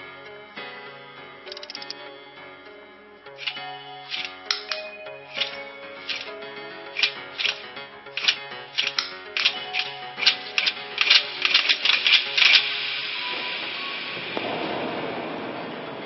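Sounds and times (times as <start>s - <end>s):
soundtrack music: 0.0s - 16.0s
sharp irregular clicks: 1.5s - 2.0s, 5.4s - 6.3s, 7.0s - 12.7s.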